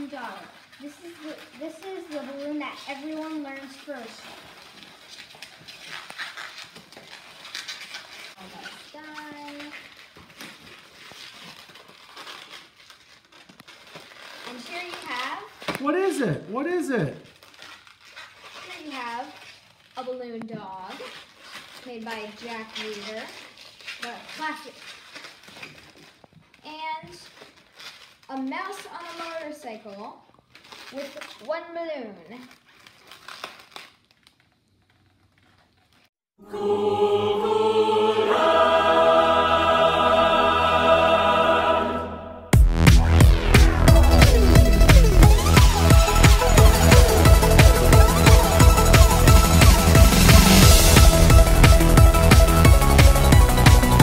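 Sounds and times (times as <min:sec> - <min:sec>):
balloons squeaking and rubbing: 0:00.0 - 0:36.2, 0:42.5 - 0:54.0.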